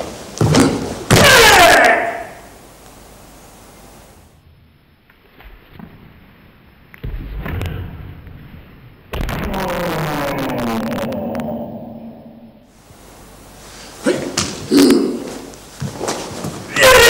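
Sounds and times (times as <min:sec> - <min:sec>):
loud shout with falling pitch: 0:09.4 - 0:12.6.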